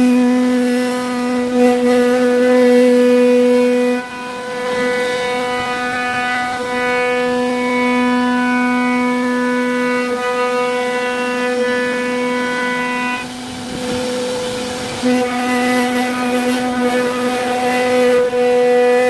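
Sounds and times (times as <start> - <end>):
router spindle whining: 0.0 - 19.0.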